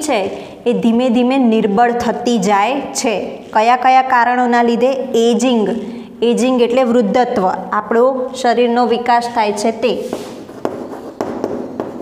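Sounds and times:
chalk scratching on blackboard: 0:09.8 - 0:12.0
chalk tapping on board: 0:10.0 - 0:12.0.

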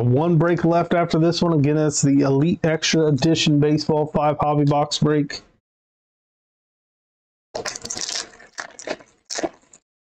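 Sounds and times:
foil wrapper tearing and crinkling: 0:07.6 - 0:09.8.

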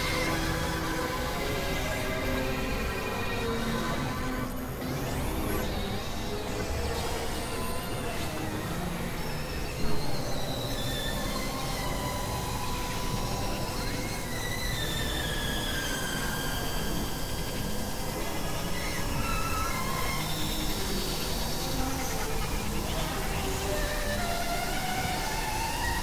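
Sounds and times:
electronic noise drone: 0:00.0 - 0:26.0.

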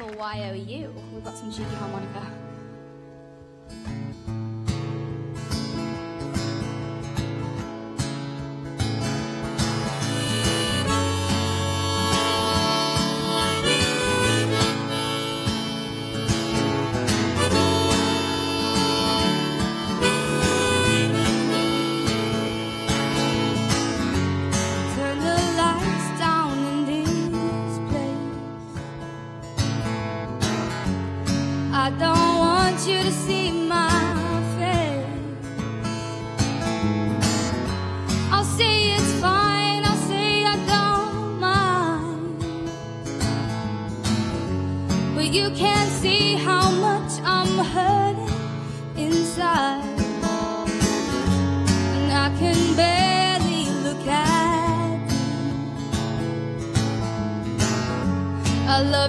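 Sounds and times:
strummed acoustic guitar: 0:00.0 - 0:59.0
harmonica melody: 0:08.8 - 0:27.9
woman singing: 0:24.8 - 0:28.8, 0:31.6 - 0:36.0, 0:38.1 - 0:43.0, 0:44.9 - 0:51.0, 0:51.7 - 0:56.4, 0:58.4 - 0:59.0.

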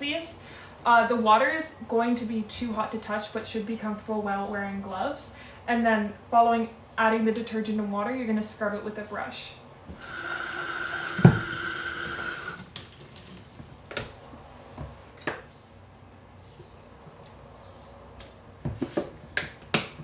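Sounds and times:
tap water running into bottle: 0:10.0 - 0:14.0
bottle knocking in sink: 0:11.2 - 0:11.5.

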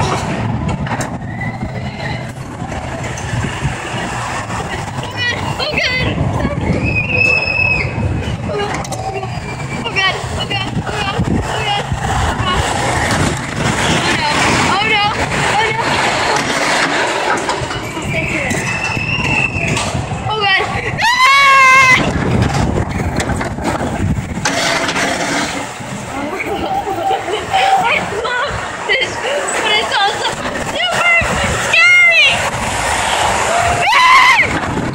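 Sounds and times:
coaster cars rumbling on track: 0:00.0 - 0:34.9
rushing wind: 0:00.0 - 0:34.9
riders shrieking and laughing: 0:26.1 - 0:28.6.

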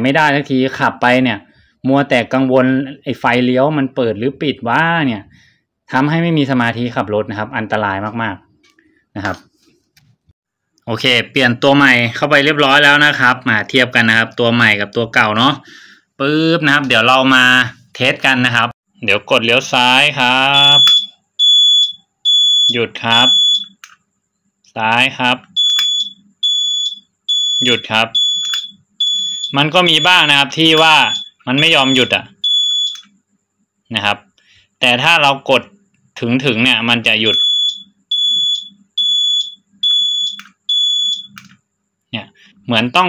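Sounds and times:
high-pitched turn-signal beeps: 0:20.5 - 0:23.8, 0:25.6 - 0:33.1, 0:37.3 - 0:41.4.

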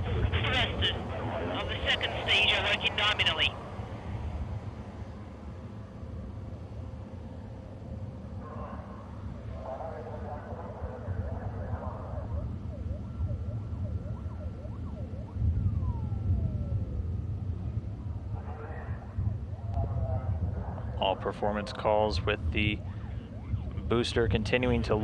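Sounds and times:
radio voice chatter: 0:00.0 - 0:03.6, 0:21.0 - 0:22.9.

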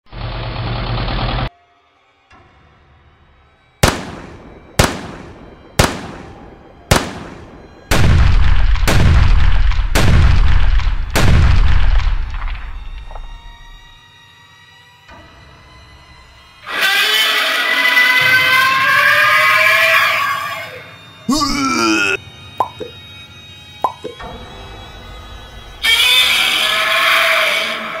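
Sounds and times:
cannon shots: 0:03.8 - 0:12.9
deep shell explosions: 0:03.8 - 0:13.3
monster roar: 0:21.3 - 0:22.2.

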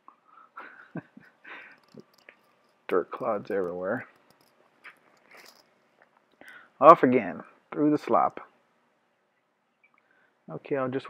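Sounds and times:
faint breaths or mouth noises: 0:01.2 - 0:02.8, 0:04.8 - 0:06.8.

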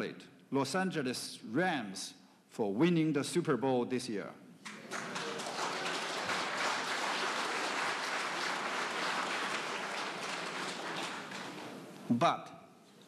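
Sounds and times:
audience applauding: 0:04.7 - 0:12.0.

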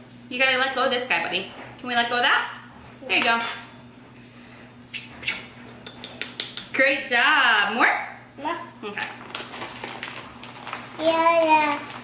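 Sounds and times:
metal cup clinking on steel bowl: 0:03.2 - 0:03.8.

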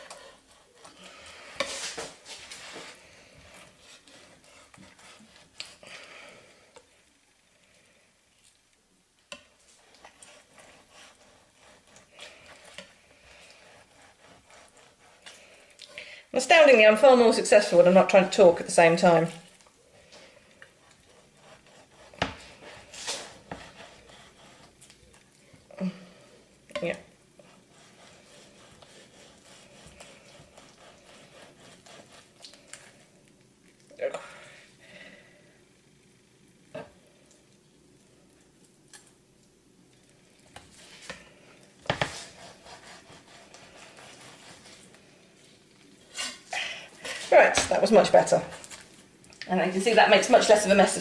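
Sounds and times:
knife scraping fish skin: 0:13.4 - 0:15.5, 0:27.4 - 0:33.0, 0:41.9 - 0:44.9.

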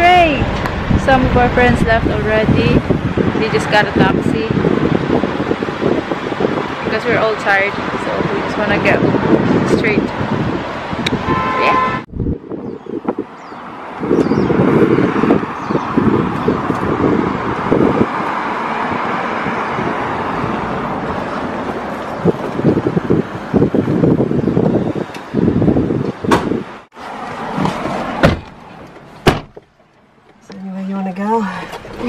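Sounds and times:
wind buffeting microphone: 0:00.0 - 0:28.5
street traffic noise: 0:00.0 - 0:32.0
sharp knock: 0:29.2 - 0:29.6.

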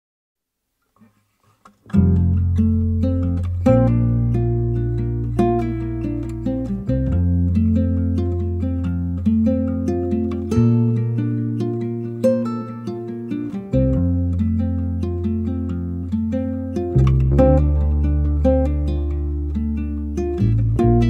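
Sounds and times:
acoustic guitar playing: 0:01.8 - 0:21.0.

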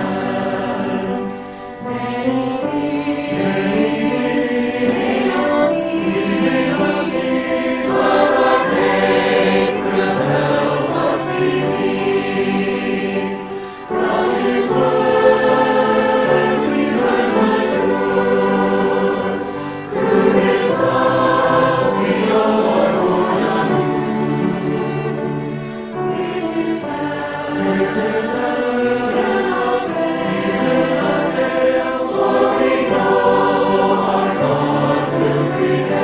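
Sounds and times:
choir singing worship song: 0:00.0 - 0:36.0.

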